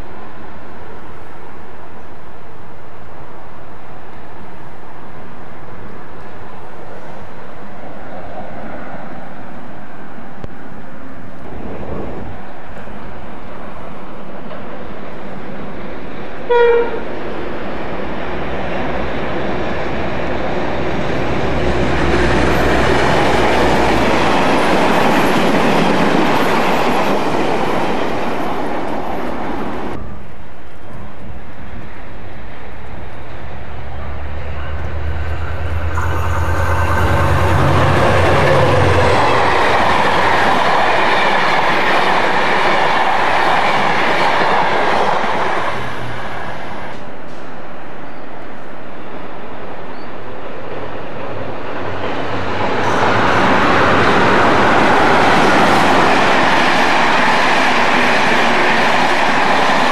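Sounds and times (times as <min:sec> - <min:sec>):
diesel locomotive engine drone: 0:00.0 - 0:59.9
train wheels on rails: 0:00.0 - 0:59.9.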